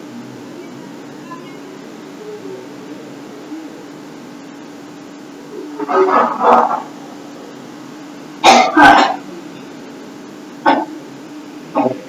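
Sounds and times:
person coughing: 0:08.4 - 0:09.2, 0:10.7 - 0:10.9.

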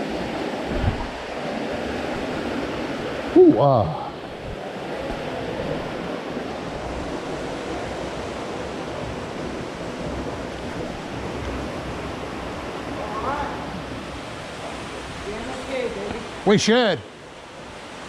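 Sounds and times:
flowing water rushing: 0:00.0 - 0:18.0.

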